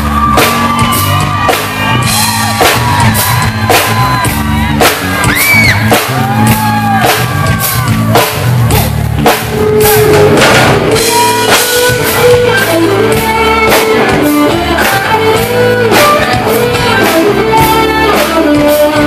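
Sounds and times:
drum kit beat: 0.0s - 19.0s
live pop-rock band: 0.0s - 19.0s.

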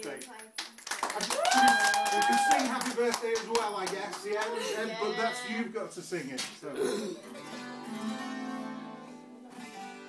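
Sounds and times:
hands clapping rapidly: 0.0s - 4.6s.

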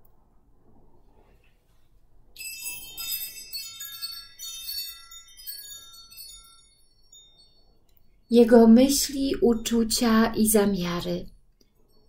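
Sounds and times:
high bright chimes ringing: 2.4s - 11.2s.

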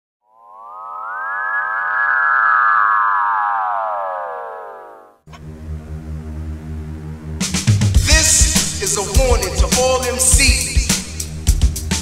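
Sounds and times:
synthesizer sweep: 0.2s - 9.3s
low synth bass drone: 0.7s - 9.6s.

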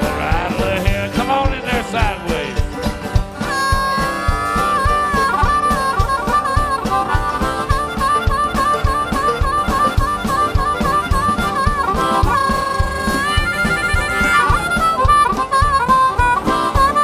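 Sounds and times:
acoustic bluegrass band: 0.0s - 17.0s
harmonica solo: 0.0s - 17.0s.

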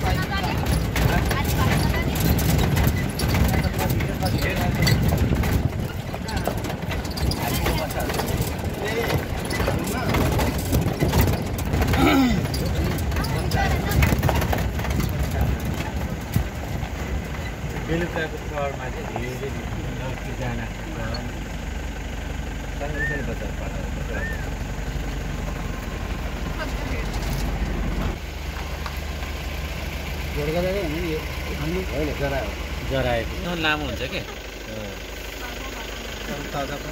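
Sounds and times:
indistinct voices: 0.0s - 16.6s
vehicle rumbling on the move: 0.0s - 36.9s.

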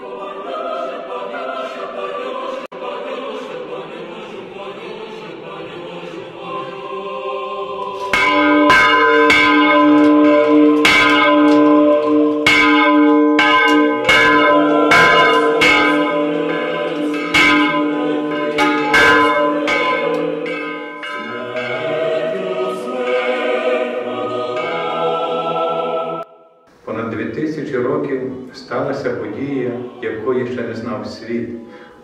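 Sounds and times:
choir singing: 0.0s - 26.7s, 27.5s - 31.8s
church bells ringing: 8.0s - 26.6s
big bell hum: 8.1s - 23.4s.

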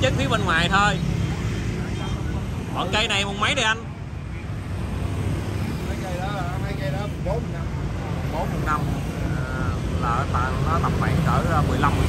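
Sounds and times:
faint voices talking: 0.0s - 12.0s
low rumble of street traffic: 0.0s - 12.0s.

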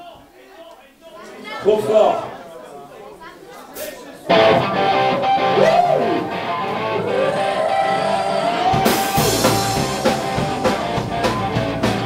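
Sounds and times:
crowd chatter: 0.0s - 12.0s
electric guitar chord: 4.3s - 12.0s.

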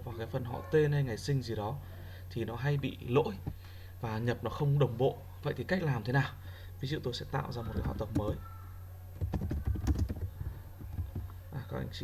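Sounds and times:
computer keyboard typing: 7.7s - 8.4s, 9.2s - 11.3s.

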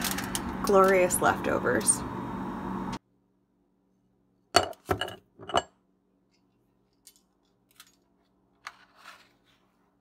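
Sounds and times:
kitchenware clinking: 4.6s - 5.8s.

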